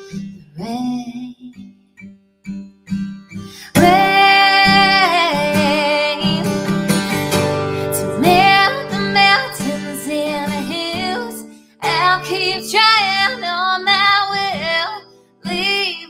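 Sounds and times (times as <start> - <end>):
woman singing: 0.0 - 1.7, 3.6 - 16.0
acoustic guitar strumming: 1.8 - 16.0.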